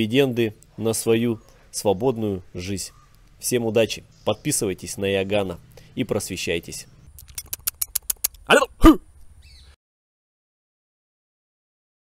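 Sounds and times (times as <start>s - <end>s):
fingers clicking on microphone: 7.1s - 8.5s
man clearing throat: 8.8s - 9.1s.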